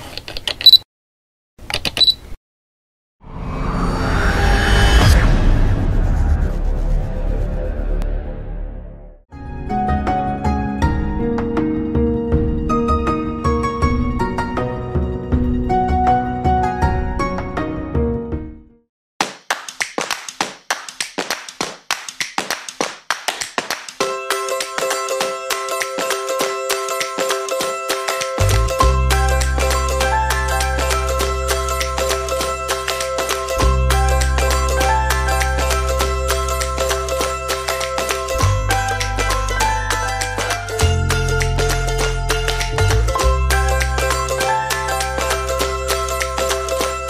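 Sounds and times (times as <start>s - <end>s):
rhythmic handclaps and taps: 19.2s - 28.8s, 31.8s - 47.0s.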